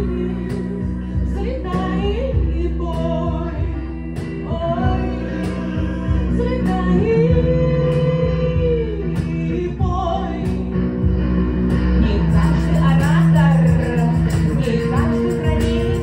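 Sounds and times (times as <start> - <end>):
drums: 0.0 - 16.0
electric guitar: 0.0 - 16.0
woman singing: 0.0 - 16.0.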